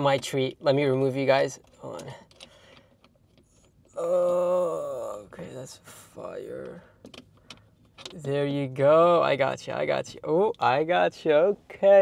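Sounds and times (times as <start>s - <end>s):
phone handling rustle: 6.5s - 8.4s.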